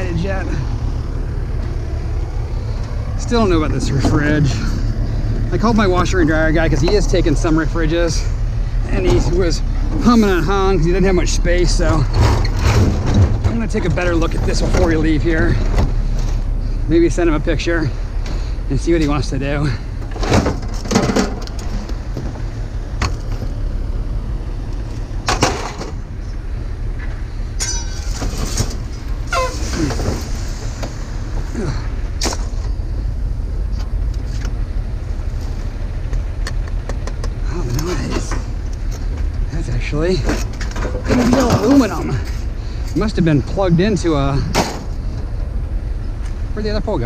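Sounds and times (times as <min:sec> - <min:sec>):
engine running: 0:00.0 - 0:47.0
scrap metal clanking onto ground: 0:20.0 - 0:21.9, 0:27.6 - 0:30.5, 0:40.2 - 0:42.4.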